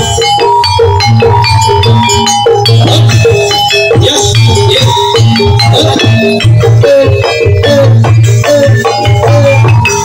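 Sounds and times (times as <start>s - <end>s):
gamelan percussion music: 0.0s - 10.0s.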